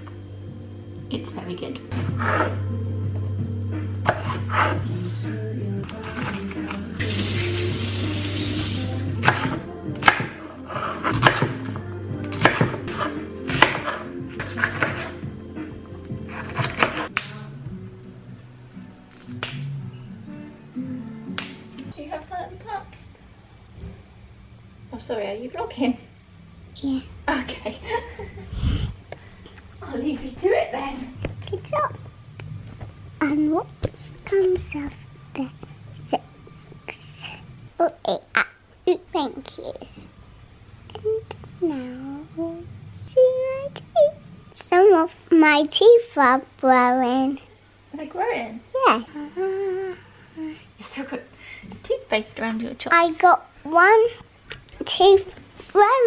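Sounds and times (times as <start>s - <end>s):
background music: 0.0s - 23.0s, 29.9s - 46.7s
knife chopping on wooden board: 11.0s - 11.7s, 12.4s - 15.1s, 16.3s - 17.1s
child's high-pitched vocal sounds: 48.8s - 50.7s.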